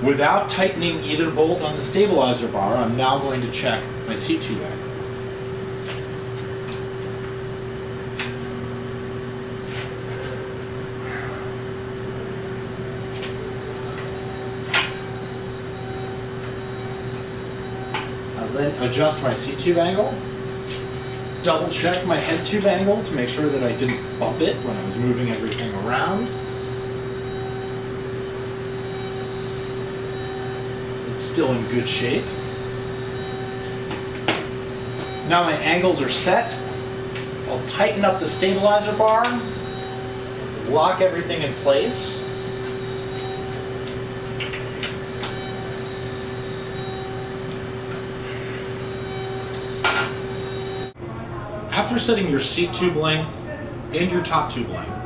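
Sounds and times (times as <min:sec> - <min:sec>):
steady background hum: 0:00.0 - 0:55.0.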